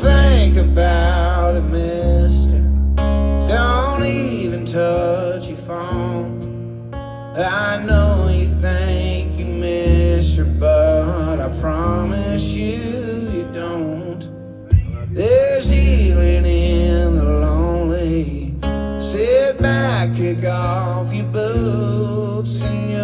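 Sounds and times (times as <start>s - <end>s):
person singing: 0.0s - 6.4s, 7.4s - 23.0s
strummed acoustic guitar: 0.0s - 23.0s.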